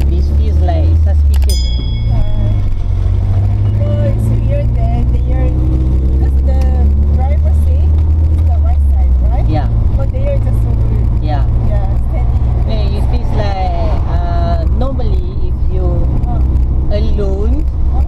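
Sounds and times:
road rumble: 0.0s - 18.0s
van engine: 0.0s - 18.0s.

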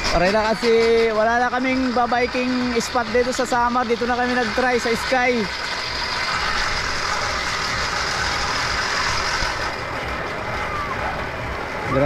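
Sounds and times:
trolley wheels rolling on cable: 0.0s - 12.0s.

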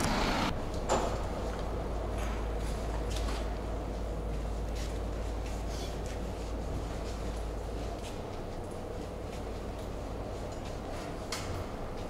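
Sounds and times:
hollow room noise: 0.0s - 12.0s
steady low hum: 0.0s - 12.0s.

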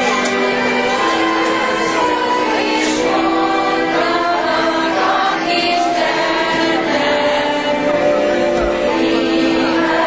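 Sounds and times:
group of women singing: 0.0s - 10.0s.

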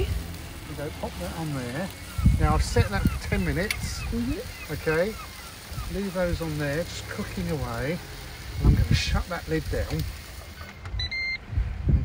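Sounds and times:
wind rumble on microphone: 2.0s - 4.9s, 8.4s - 10.2s, 10.9s - 12.0s
control panel beeps: 10.8s - 11.4s.

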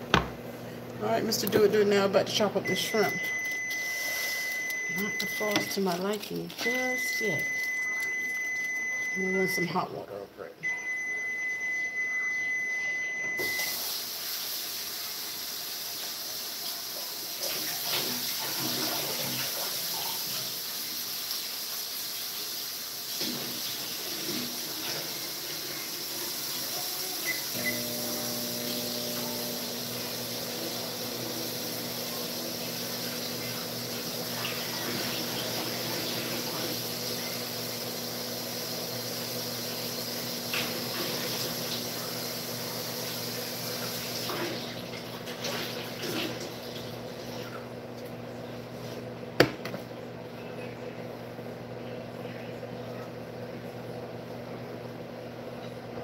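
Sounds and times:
high beep: 2.6s - 6.0s, 6.6s - 9.8s, 10.6s - 13.7s
water running from tap: 2.6s - 9.6s, 13.4s - 47.7s.

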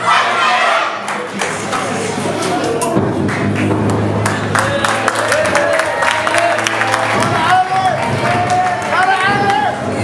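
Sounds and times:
audience noise: 0.0s - 10.0s
live band music: 4.5s - 9.7s.

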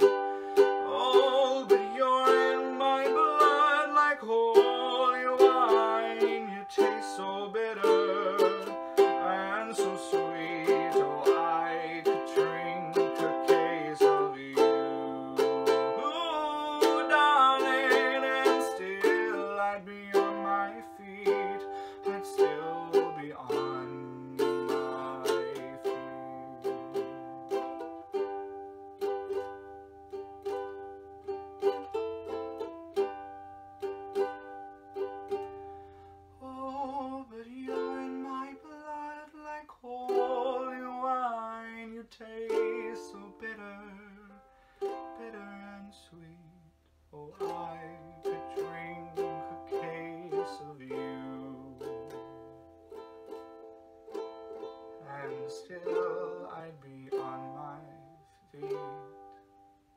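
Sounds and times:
ukulele chords: 0.0s - 59.9s.

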